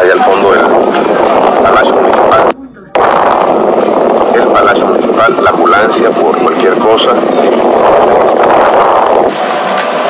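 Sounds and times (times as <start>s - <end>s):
dense jumble of voices: 0.0s - 9.4s.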